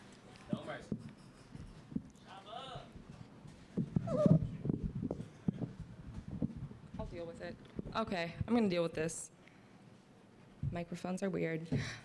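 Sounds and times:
microphone knocks and bumps: 3.7s - 7.2s, 10.6s - 10.8s.

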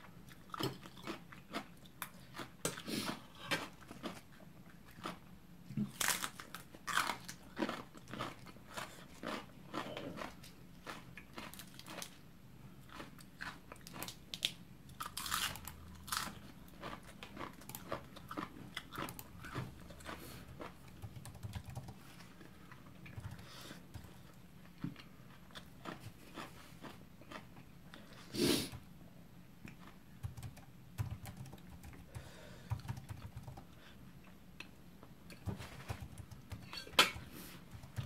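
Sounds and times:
person chewing crunchy vegetables: 0.1s - 28.8s, 29.6s - 30.5s.

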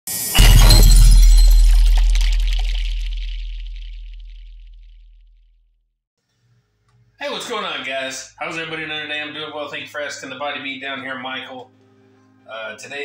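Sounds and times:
loud crash with deep boom: 0.3s - 5.0s.

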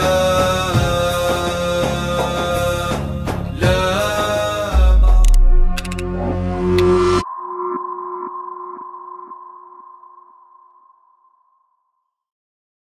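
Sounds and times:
echoing synth tones: 4.8s - 12.0s.

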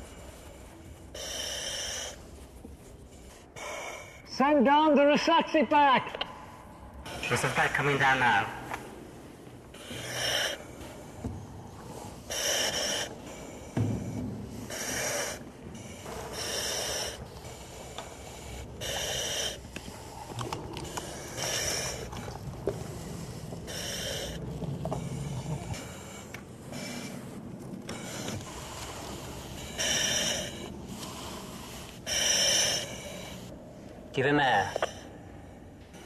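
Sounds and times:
hissing breaths through mask valve: 0.0s - 4.2s, 9.8s - 33.5s.

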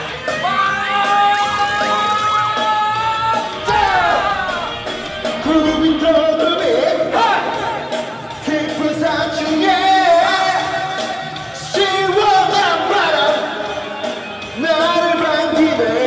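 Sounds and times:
music backing track: 0.0s - 16.0s
man singing into microphone: 5.4s - 7.7s, 8.4s - 13.7s, 14.5s - 16.0s.

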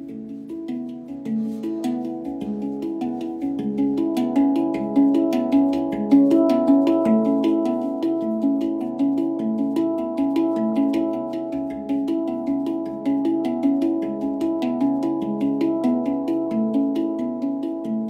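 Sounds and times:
handpan ringing notes: 0.0s - 18.0s.

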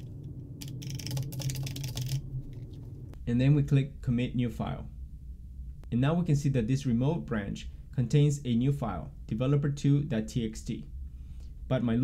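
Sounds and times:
low steady hum: 0.0s - 12.0s
computer keyboard typing: 0.6s - 2.7s.

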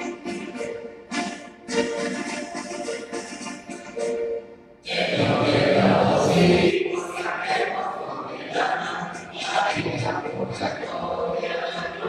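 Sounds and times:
choir singing held notes: 0.0s - 12.0s
orchestra over loudspeakers: 0.0s - 12.0s.

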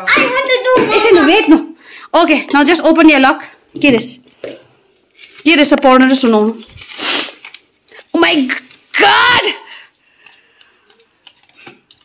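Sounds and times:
paper crinkling: 4.8s - 12.0s.

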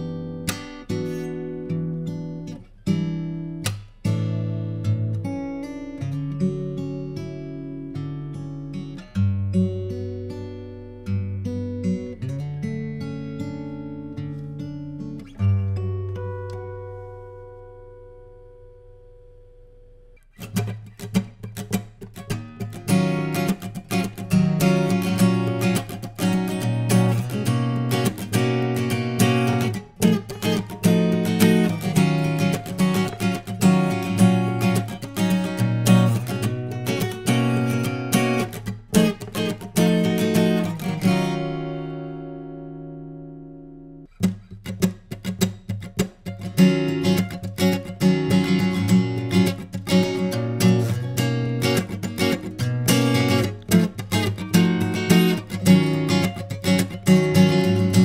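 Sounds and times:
acoustic guitar notes ringing: 0.0s - 58.0s
fingerstyle acoustic guitar: 0.0s - 58.0s.

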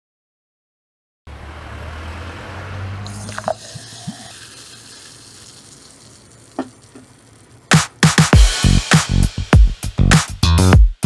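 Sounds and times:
bottle gurgling: 3.0s - 7.7s
carbonated drink fizzing: 3.0s - 7.7s
cola pouring into a glass: 3.0s - 7.7s.

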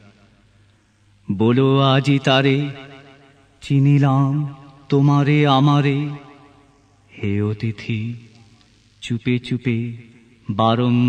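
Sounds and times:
man reciting poetry: 1.2s - 6.4s, 7.1s - 11.0s.

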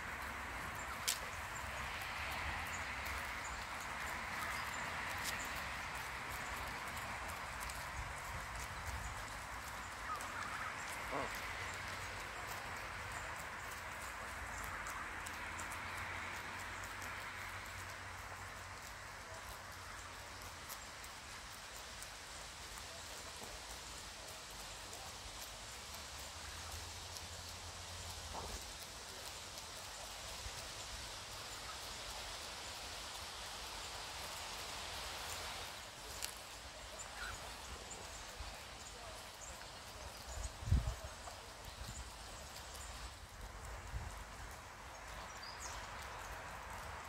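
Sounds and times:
geese bills plucking grass: 0.0s - 47.0s
steady background noise: 0.0s - 47.0s
steady outdoor hiss: 0.0s - 47.0s.

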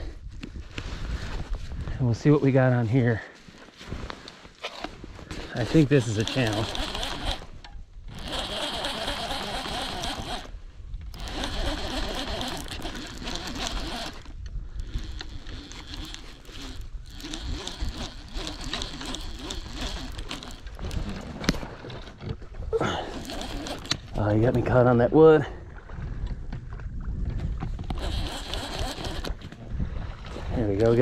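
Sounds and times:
fishing reel whirring and ratcheting: 5.6s - 21.2s, 22.9s - 24.3s, 27.8s - 29.5s.

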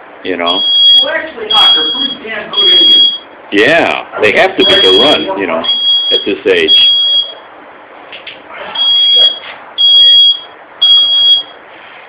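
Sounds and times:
faint steady background noise: 0.0s - 12.0s
high-pitched electronic alarm beeping: 0.5s - 3.4s, 4.6s - 7.5s, 8.8s - 11.6s.

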